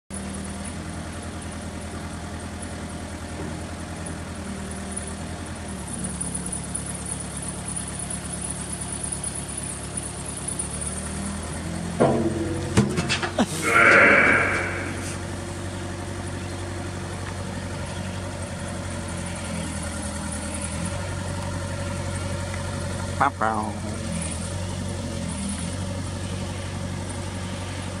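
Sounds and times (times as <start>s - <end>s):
excavator diesel engine running: 0.2s - 28.0s
high-pitched whine: 13.5s - 15.4s.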